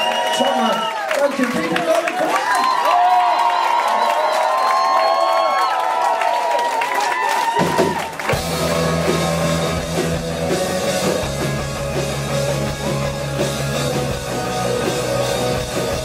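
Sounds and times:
drums: 0:07.3 - 0:16.0
bass guitar: 0:08.3 - 0:16.0.

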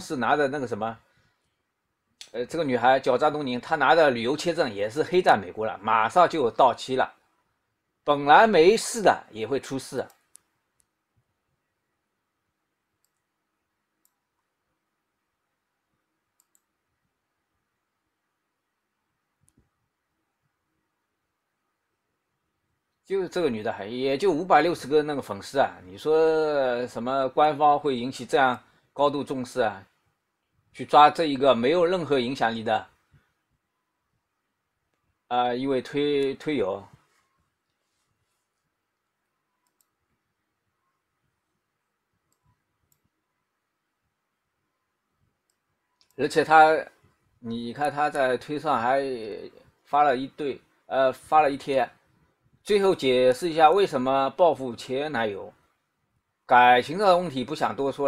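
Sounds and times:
faint computer mouse clicks: 0:13.0 - 0:13.3, 0:14.0 - 0:14.5, 0:16.4 - 0:16.7, 0:19.4 - 0:19.7, 0:39.5 - 0:40.0, 0:45.4 - 0:46.2.

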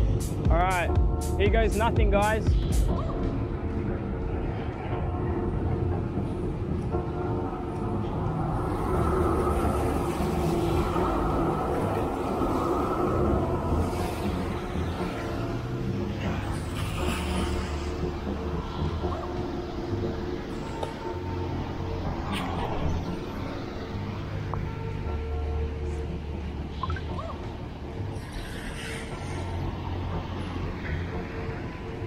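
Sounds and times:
tram running on wet rails: 0:03.4 - 0:32.0.

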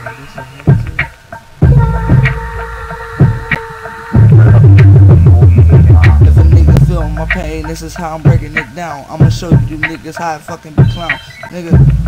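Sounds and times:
drum hits: 0:00.7 - 0:10.0, 0:10.8 - 0:12.0
deep pulsing bass: 0:01.6 - 0:03.5, 0:04.2 - 0:08.6, 0:11.8 - 0:12.0.

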